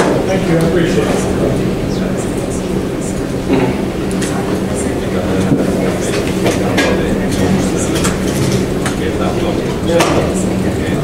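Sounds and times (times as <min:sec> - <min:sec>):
indistinct voices: 0:00.0 - 0:11.0
steady room hum: 0:00.0 - 0:11.0.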